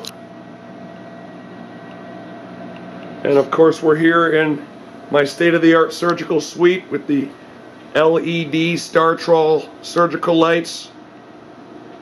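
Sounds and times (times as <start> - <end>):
fans hissing and humming: 0.0 - 12.0.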